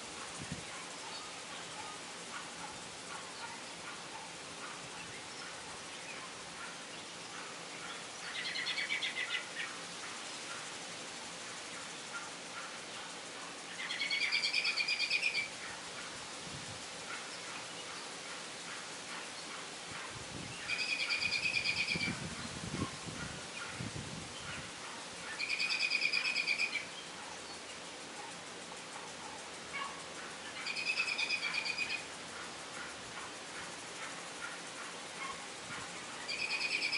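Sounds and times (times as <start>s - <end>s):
steady background hiss: 0.0s - 36.9s
songbird trilling: 7.8s - 9.7s, 13.7s - 15.8s, 20.4s - 27.8s, 29.7s - 33.0s, 35.2s - 36.9s.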